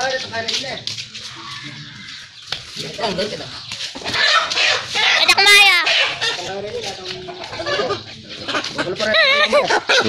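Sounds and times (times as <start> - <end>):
chicken calling: 1.2 - 3.2, 3.9 - 10.0.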